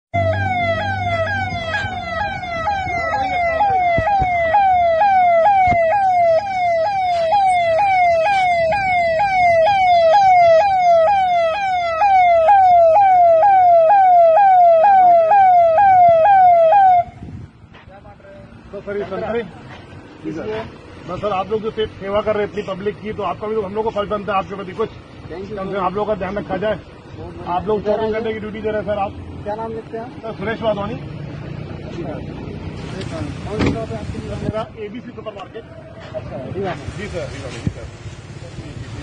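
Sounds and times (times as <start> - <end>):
police siren wailing: 0.2 - 17.2.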